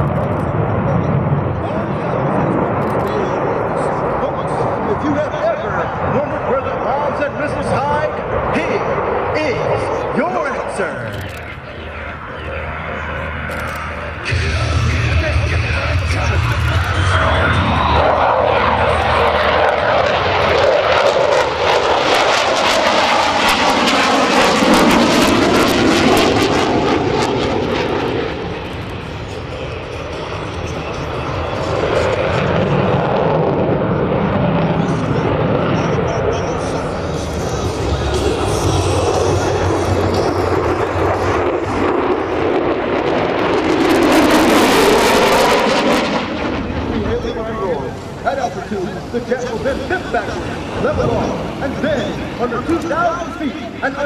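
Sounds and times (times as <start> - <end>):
jet engine passing: 0.0 - 54.0.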